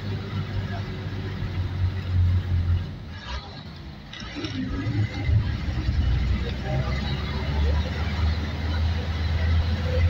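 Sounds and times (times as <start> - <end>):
bus engine and road noise: 0.0 - 10.0.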